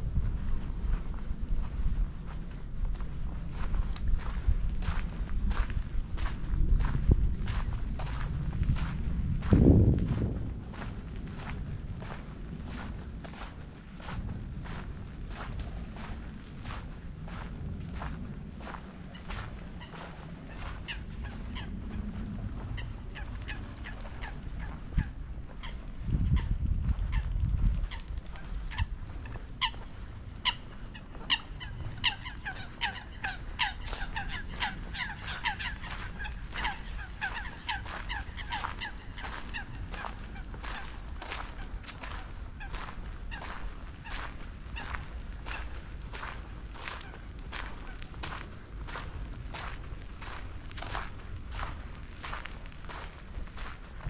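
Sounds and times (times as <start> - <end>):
footsteps walking: 0.2 - 54.0
bird calling in repeated notes: 27.9 - 45.8.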